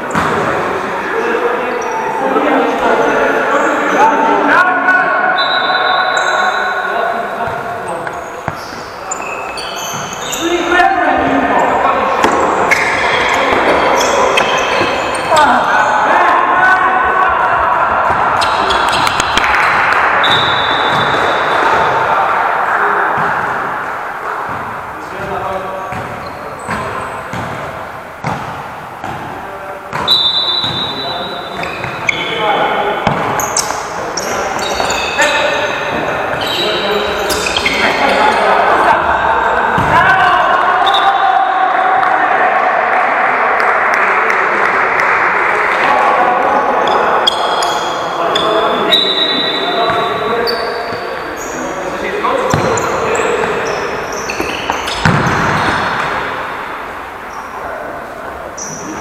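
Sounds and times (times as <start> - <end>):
players calling and shouting: 0.0 - 59.0
shoes squeaking on floor: 5.3 - 16.1, 18.1 - 21.9, 25.9 - 27.6, 29.9 - 38.6, 46.8 - 56.3, 58.5 - 59.0
ball kicked and bouncing: 54.4 - 55.8.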